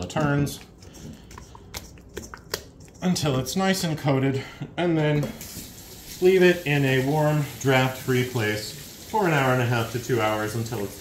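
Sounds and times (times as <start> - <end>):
wet squishing of dough: 0.0 - 4.0.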